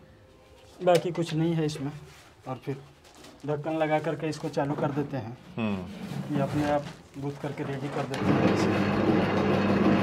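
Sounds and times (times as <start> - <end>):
dough mixer motor humming: 8.2 - 10.0.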